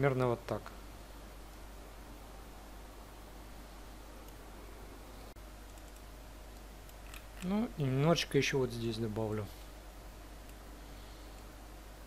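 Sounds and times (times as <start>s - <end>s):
microphone hiss and hum: 0.0s - 12.0s
faint computer clicks: 5.6s - 7.6s.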